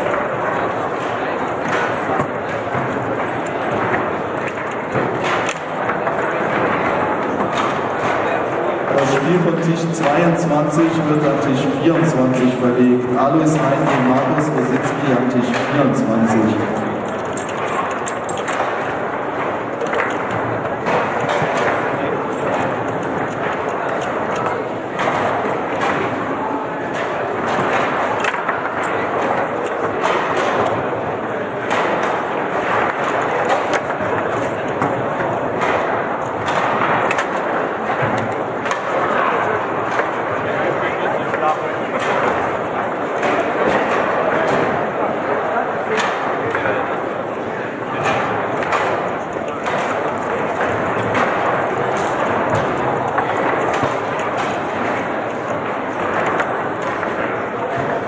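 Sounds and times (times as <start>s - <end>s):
hubbub of voices: 0.0s - 58.0s.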